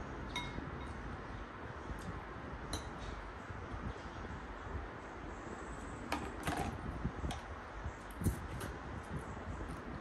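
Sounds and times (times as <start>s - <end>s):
spoon clinking ceramic bowl: 0.3s - 1.0s.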